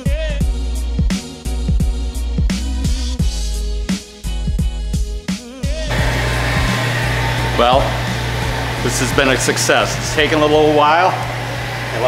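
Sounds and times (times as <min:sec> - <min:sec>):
mixer motor humming: 0:05.9 - 0:12.0.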